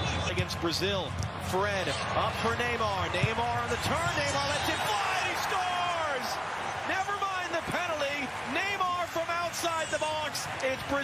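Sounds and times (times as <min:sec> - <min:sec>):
man commentating: 0:00.2 - 0:11.0.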